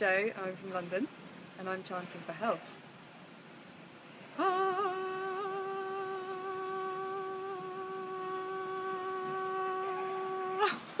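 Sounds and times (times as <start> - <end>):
woman chanting a held note: 4.4 - 10.9.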